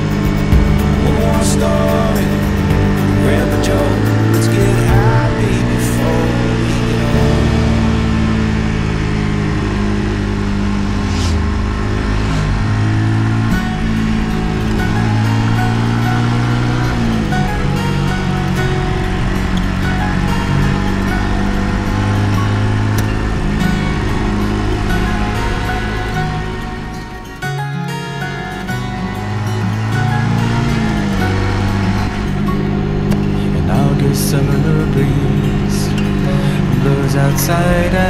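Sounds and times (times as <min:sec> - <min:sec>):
motorcycle engine running: 0:00.0 - 0:27.4, 0:28.1 - 0:38.0
background music: 0:00.0 - 0:38.0.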